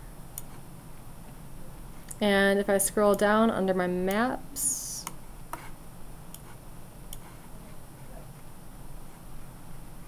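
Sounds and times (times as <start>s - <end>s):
faint low hum: 0.0s - 10.0s
computer mouse clicks: 5.0s - 5.7s.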